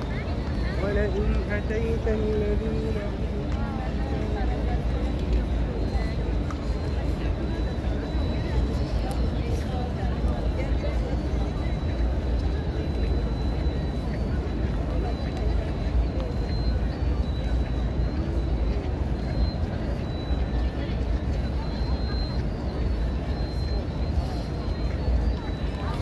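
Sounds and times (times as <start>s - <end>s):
distant crowd chatter: 0.0s - 26.0s.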